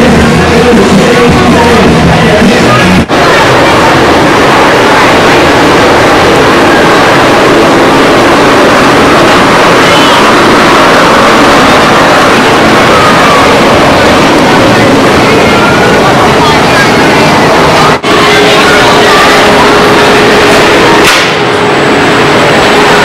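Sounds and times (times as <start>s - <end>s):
faint voices: 0.0s - 23.0s
loud rushing noise: 0.0s - 23.0s.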